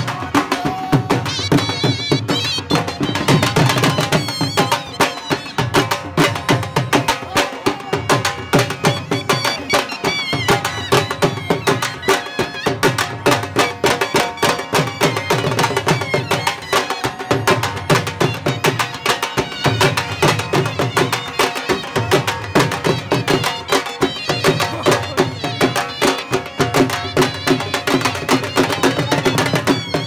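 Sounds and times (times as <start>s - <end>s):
drum beaten with a stick: 0.0s - 30.0s
wavering melody: 0.0s - 30.0s.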